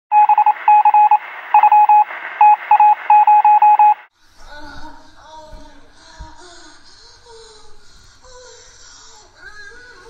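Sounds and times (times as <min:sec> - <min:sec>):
electronic beeps: 0:00.1 - 0:04.1
thin telephone-like sound: 0:00.1 - 0:04.1.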